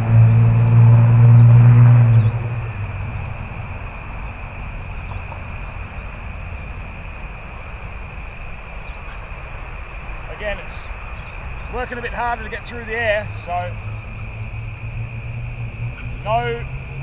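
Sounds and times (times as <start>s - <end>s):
low even rumble: 0.0s - 17.0s.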